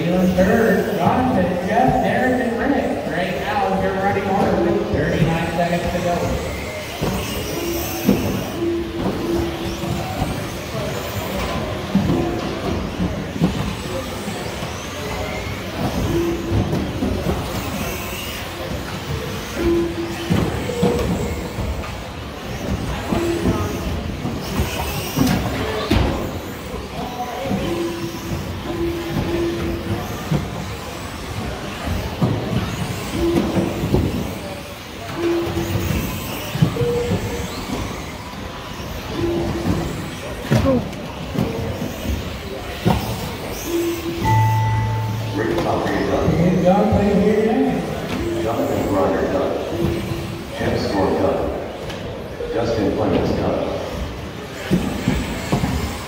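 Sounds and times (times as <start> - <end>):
electric rc buggies running: 0.0 - 1.7, 2.3 - 44.2, 46.1 - 56.0
voices in hall: 0.0 - 56.0.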